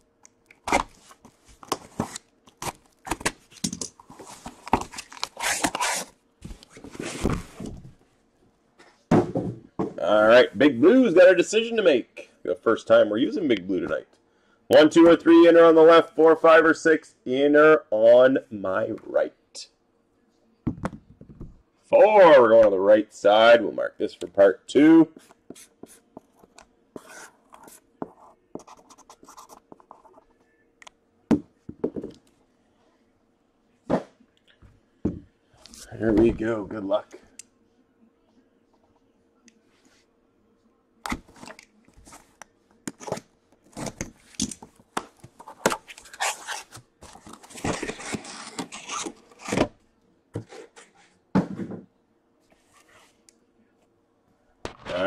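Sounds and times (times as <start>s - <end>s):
cardboard rubbing and scraping: 4.1s - 7.8s, 45.3s - 49.7s
box knocking as set down: 9.1s - 10.0s, 51.3s - 51.9s
marker pen scratching on cardboard: 25.2s - 30.4s.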